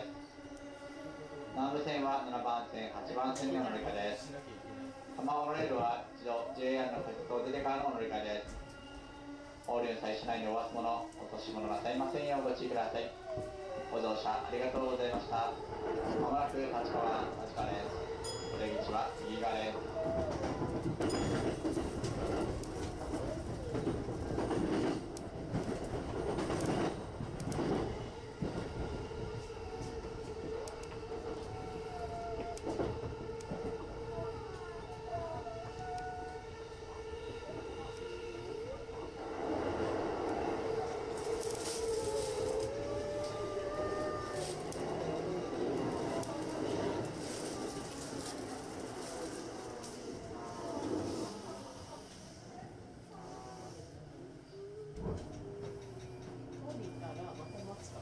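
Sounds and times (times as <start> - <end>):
train running hum: 0.0 - 58.0.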